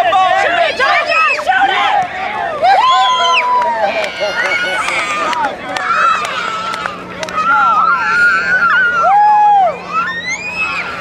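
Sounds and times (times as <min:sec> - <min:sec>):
children shouting: 0:00.0 - 0:11.0
people shouting: 0:00.0 - 0:11.0.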